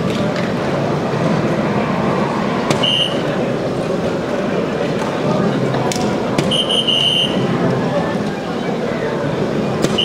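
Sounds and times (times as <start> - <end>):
hall noise: 0.0 - 10.0.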